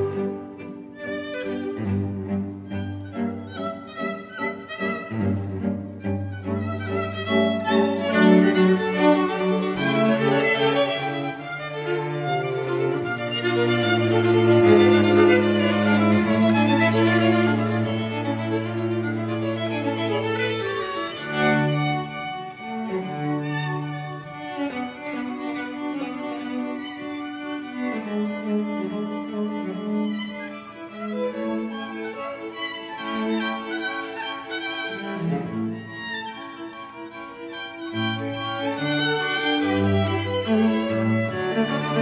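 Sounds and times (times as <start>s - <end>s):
low cello line: 0.0s - 42.0s
string quartet bowing held notes: 0.0s - 42.0s.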